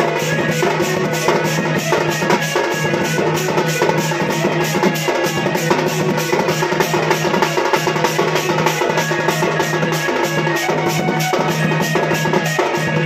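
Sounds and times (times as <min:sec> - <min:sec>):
dhol drum beating: 0:00.0 - 0:13.0.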